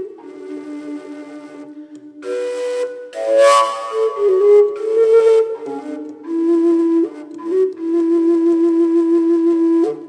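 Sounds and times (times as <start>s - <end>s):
overtone flute sustained notes: 0.0s - 10.0s.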